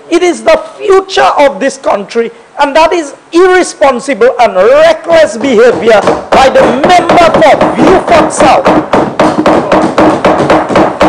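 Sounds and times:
hands knocking on wooden desks: 0:05.3 - 0:11.0.

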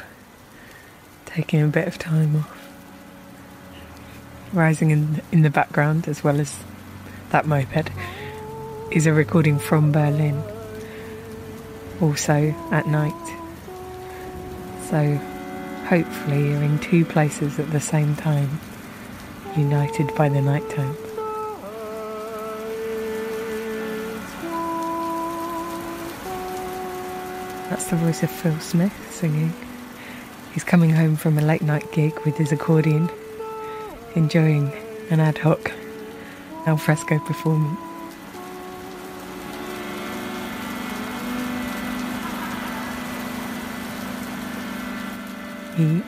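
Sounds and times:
rain falling: 0:00.0 - 0:46.0
man singing long notes: 0:07.4 - 0:46.0
accordion holding chords: 0:07.7 - 0:30.5, 0:33.1 - 0:46.0.

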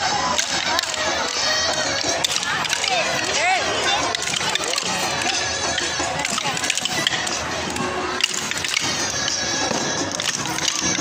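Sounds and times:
children chattering and calling: 0:00.0 - 0:11.0
music: 0:00.0 - 0:11.0
wooden dance sticks clicking: 0:00.0 - 0:11.0.

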